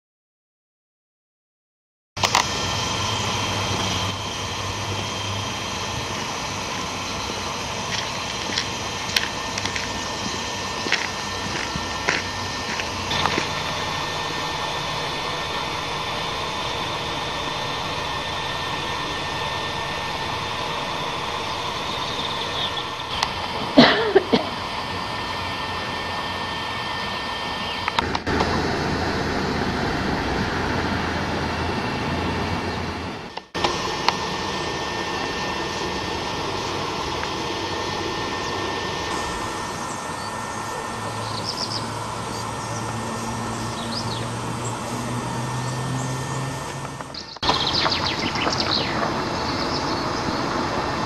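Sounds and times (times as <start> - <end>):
faint constant whine: 2.2 - 51.0
outdoor background noise: 2.2 - 51.0.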